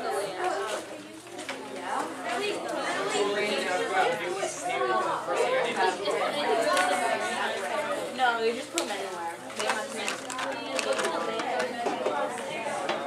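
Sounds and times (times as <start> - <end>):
students chattering: 0.0 - 13.0.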